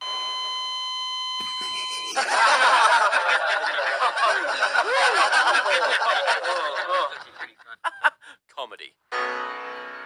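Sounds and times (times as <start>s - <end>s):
people laughing: 1.4s - 8.4s.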